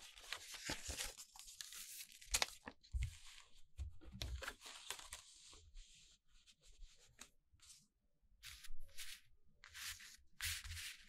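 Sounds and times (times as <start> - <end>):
paper crackle: 0.0 - 3.4, 4.3 - 5.4
paper rustling and sliding: 0.0 - 3.4, 8.4 - 11.0.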